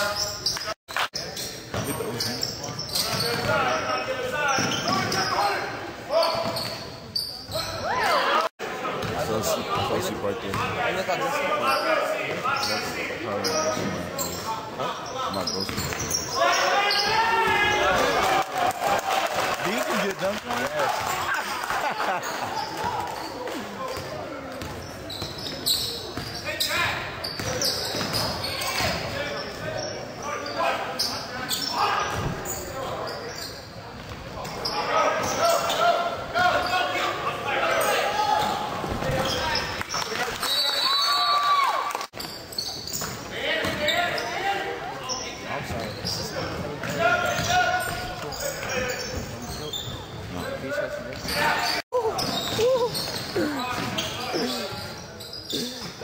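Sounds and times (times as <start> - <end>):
sneakers squeaking on court: 0.0 - 7.9, 9.0 - 10.8, 11.7 - 18.1, 22.2 - 37.0, 37.7 - 41.2, 42.1 - 44.4, 45.0 - 56.0
murmur of spectators: 0.0 - 56.0.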